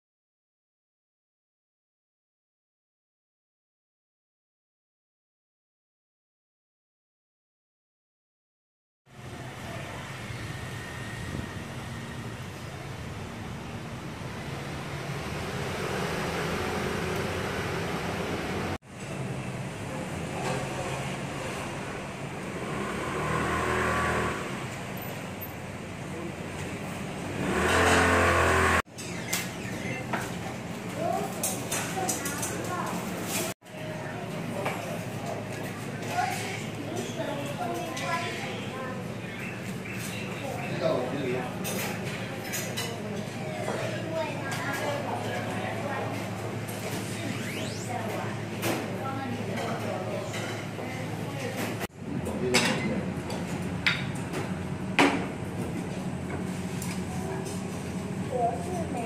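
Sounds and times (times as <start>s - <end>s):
traffic noise: 9.1s - 34.7s.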